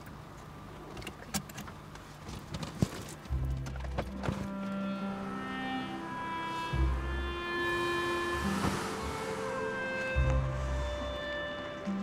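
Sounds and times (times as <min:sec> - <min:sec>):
dramatic sustained music: 0:03.3 - 0:12.0.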